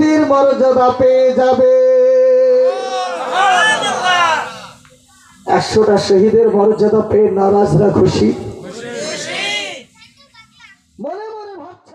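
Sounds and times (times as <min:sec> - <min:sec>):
voice in drawn-out tones: 0:02.7 - 0:04.8.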